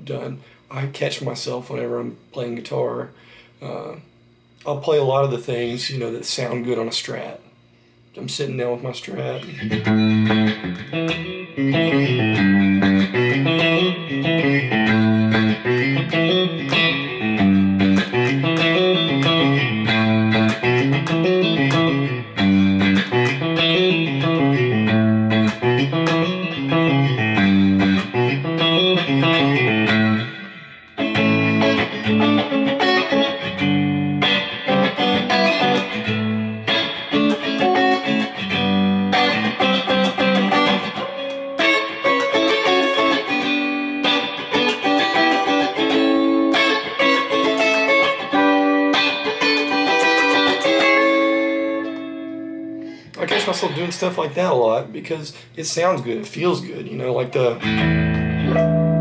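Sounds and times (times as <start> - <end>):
electric guitar playing solo: 9.2 - 54.9, 56.1 - 59.0.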